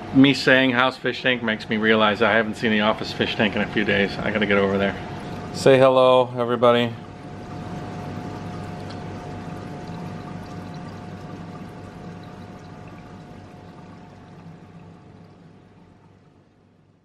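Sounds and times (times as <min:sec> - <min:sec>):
pump humming: 0:00.0 - 0:17.0
water pouring and trickling: 0:02.2 - 0:17.0.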